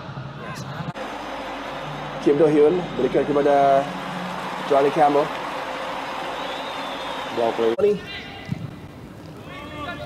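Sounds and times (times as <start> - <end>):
football ground ambience: 0.0 - 10.0.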